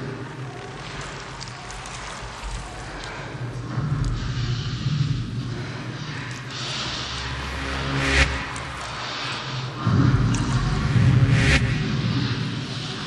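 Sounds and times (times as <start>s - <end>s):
electronic bass music: 9.8s - 12.4s.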